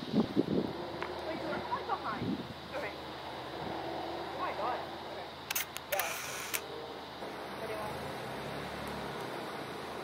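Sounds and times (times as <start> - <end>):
outdoor background noise: 0.0 - 10.0
camera shutter clicks: 5.5 - 6.6.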